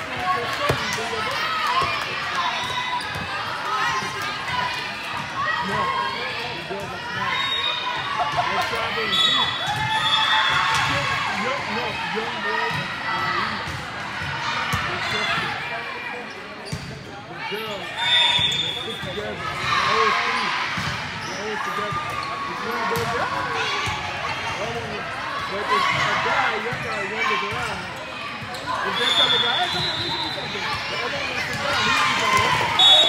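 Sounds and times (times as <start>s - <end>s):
players and spectators chatter: 0.0s - 33.0s.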